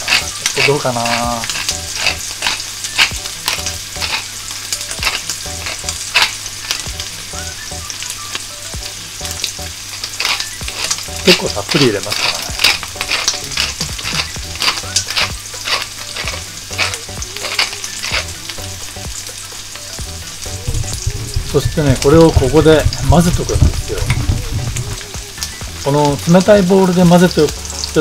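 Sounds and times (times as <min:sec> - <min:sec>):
spatula stirring paste in metal bowl: 0:00.0 - 0:04.2, 0:04.9 - 0:07.1, 0:10.0 - 0:18.5
spatula ticking against bowl: 0:00.0 - 0:07.1
pepper mill grinding: 0:00.0 - 0:28.0.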